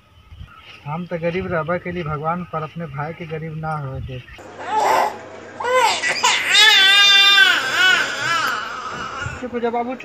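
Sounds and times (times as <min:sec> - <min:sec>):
baby crying: 0:04.5 - 0:09.4.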